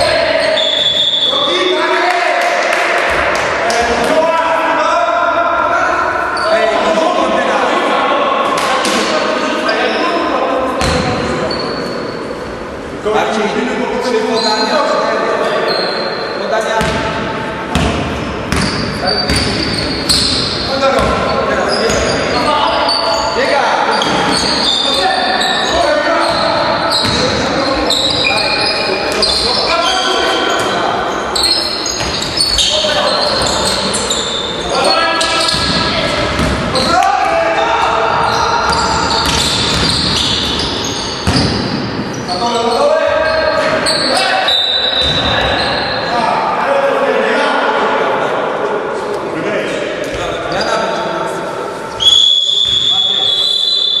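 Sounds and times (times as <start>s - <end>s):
basketball bouncing on gym floor: 10.8s - 11.2s, 16.8s - 21.3s, 27.0s - 27.4s, 32.0s - 32.6s, 35.4s - 36.7s, 38.7s - 40.6s, 41.2s - 41.8s
players shouting: 19.1s - 41.1s.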